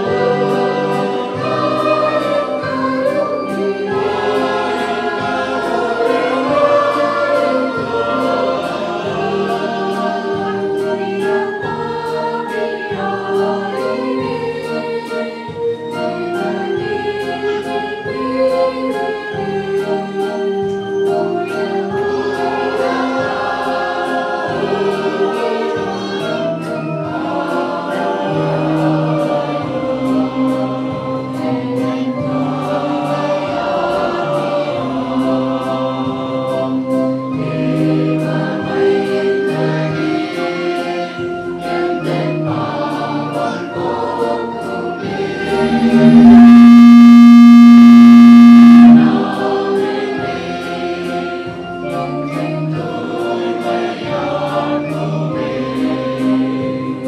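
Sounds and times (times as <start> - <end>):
choir singing carol: 0.0 - 57.0
instrumental accompaniment: 43.8 - 54.0
soft steady beat: 45.6 - 49.4.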